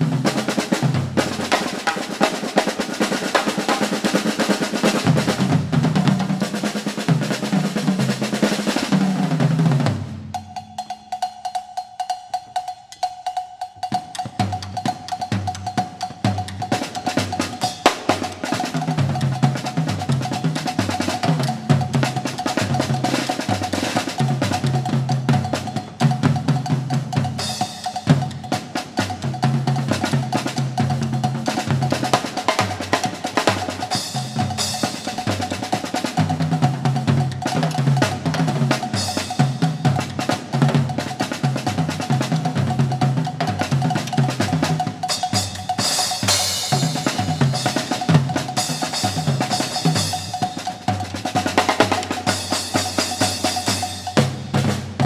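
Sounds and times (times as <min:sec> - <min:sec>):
drum ensemble on tom-toms: 0:00.0 - 0:55.0.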